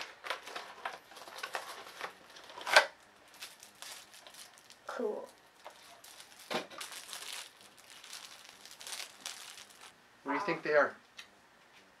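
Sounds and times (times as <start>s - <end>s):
plastic wrapping crinkling: 0.2s - 10.0s.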